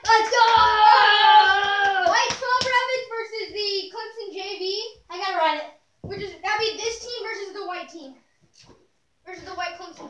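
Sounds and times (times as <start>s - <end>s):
child yelling: 0.0s - 3.0s.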